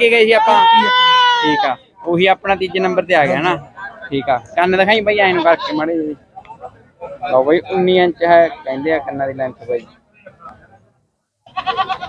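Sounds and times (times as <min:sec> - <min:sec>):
faint background murmur: 0:00.0 - 0:12.0
goat bleating: 0:11.5 - 0:12.0.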